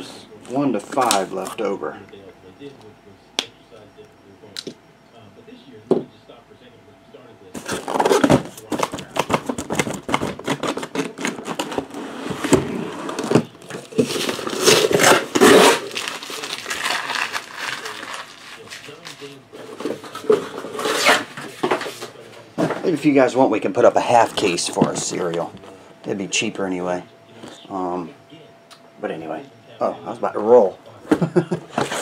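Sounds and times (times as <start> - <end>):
cardboard box rustling and scraping: 7.6 - 16.1.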